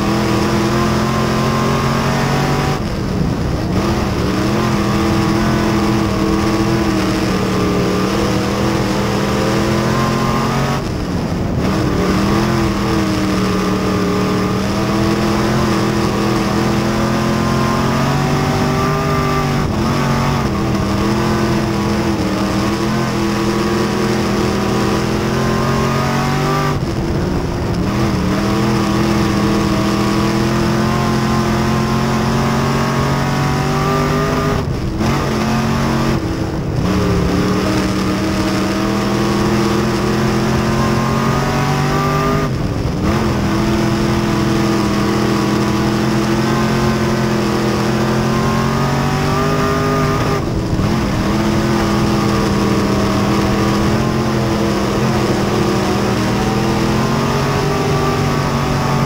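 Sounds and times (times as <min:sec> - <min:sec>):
race car engine at speed: 0:00.0 - 0:59.0.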